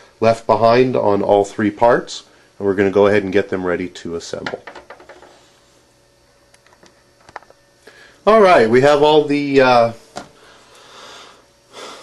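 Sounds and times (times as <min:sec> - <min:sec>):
man breathing: 0:07.8 - 0:08.2, 0:10.3 - 0:12.0
man speaking: 0:08.3 - 0:10.0.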